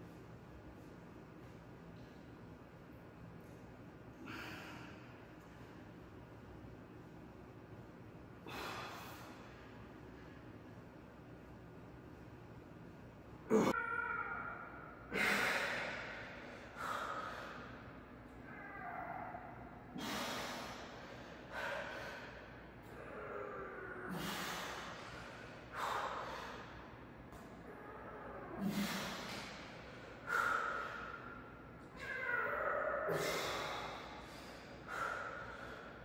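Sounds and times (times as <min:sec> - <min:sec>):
man breathing heavily: 0:08.4 - 0:10.5, 0:15.1 - 0:18.0, 0:19.9 - 0:23.4, 0:24.1 - 0:27.4, 0:28.6 - 0:31.6, 0:33.1 - 0:36.0.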